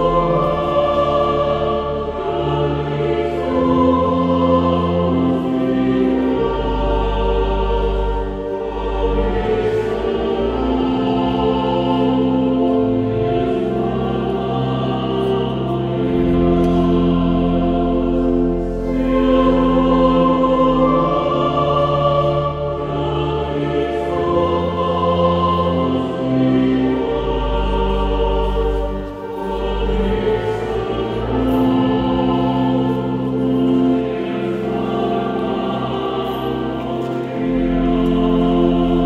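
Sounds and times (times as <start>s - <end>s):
choir singing sustained chords: 0.0s - 39.0s.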